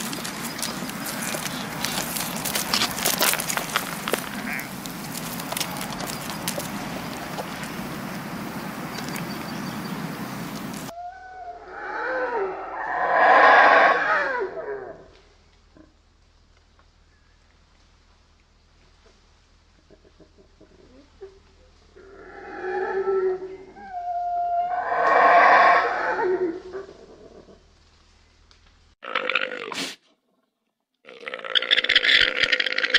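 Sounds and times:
rushing outdoor background noise: 0.0 - 11.0
howler monkey howling: 10.8 - 15.1, 22.0 - 27.6.

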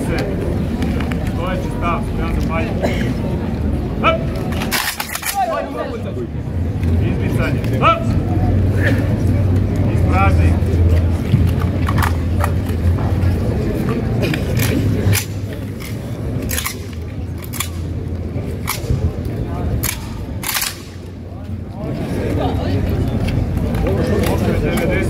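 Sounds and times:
murmur of voices: 0.0 - 25.0.

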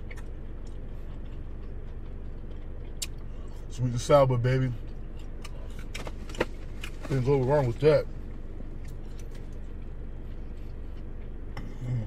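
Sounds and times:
low hum inside car: 0.0 - 12.0.

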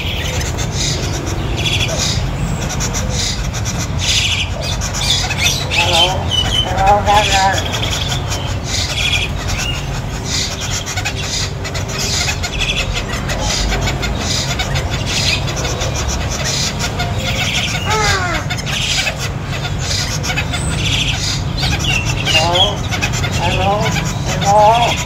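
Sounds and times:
bird squawking call: 0.0 - 25.0
birds chirping: 0.0 - 25.0.

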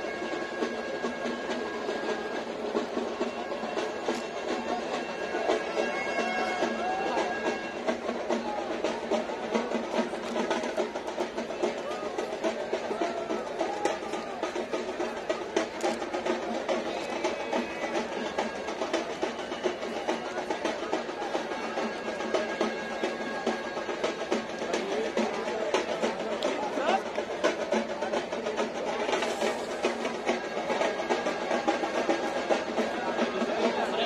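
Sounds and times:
crowd hubbub: 0.0 - 34.0
rapid drum roll: 0.0 - 34.0.

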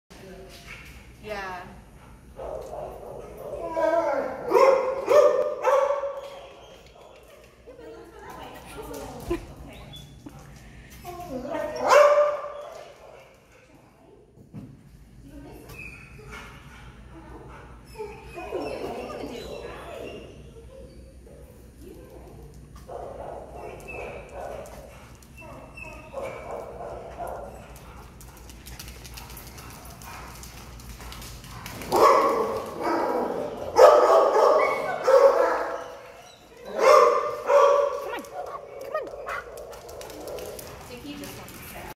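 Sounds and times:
dog barking and whining: 31.9 - 40.4.

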